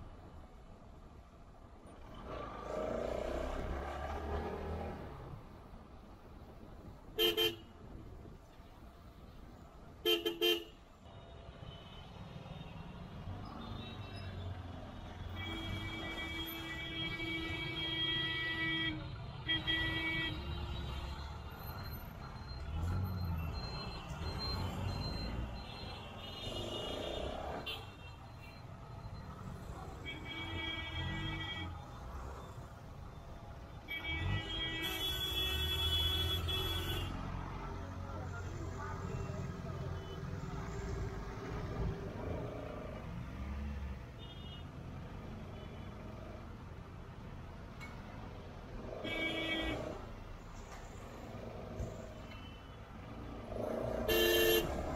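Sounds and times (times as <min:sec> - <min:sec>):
traffic engines rumbling: 0:00.0 - 0:54.9
vehicle horn: 0:33.9 - 0:37.1, 0:54.1 - 0:54.7
high steady horn tone: 0:54.1 - 0:54.7.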